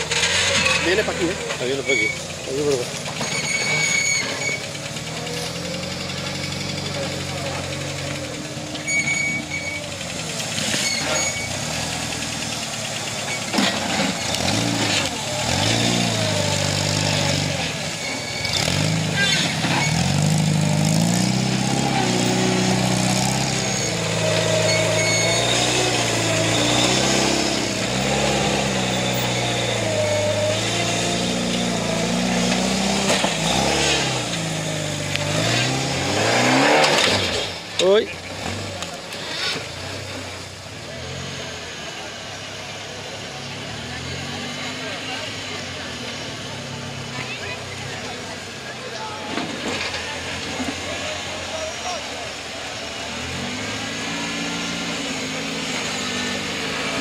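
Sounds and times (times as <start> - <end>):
buggy engines revving: 0.0 - 57.0.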